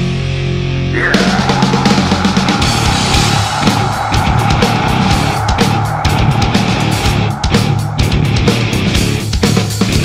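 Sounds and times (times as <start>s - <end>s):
distorted electric guitars: 0.0s - 10.0s.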